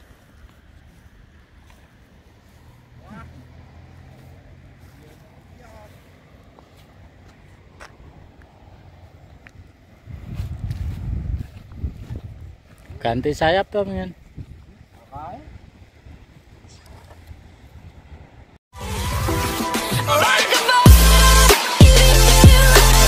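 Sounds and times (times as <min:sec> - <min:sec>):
wind buffeting microphone: 0:07.6 - 0:18.6.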